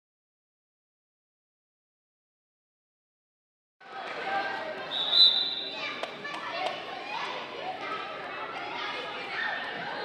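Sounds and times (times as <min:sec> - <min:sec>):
voices echoing in gymnasium: 0:03.8 - 0:10.0
referee's whistle: 0:04.9 - 0:05.7.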